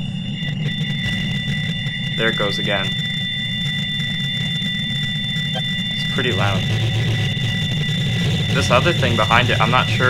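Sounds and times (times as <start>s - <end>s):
deep rumbling rattling drone: 0.0s - 10.0s
high-pitched squeal tones: 0.0s - 10.0s
lower whistle tone: 0.0s - 10.0s.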